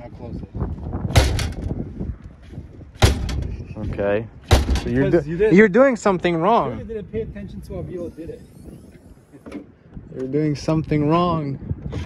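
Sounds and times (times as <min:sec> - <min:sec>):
tailgate lid rattling: 0:01.1 - 0:01.7, 0:03.0 - 0:03.5, 0:04.5 - 0:05.1.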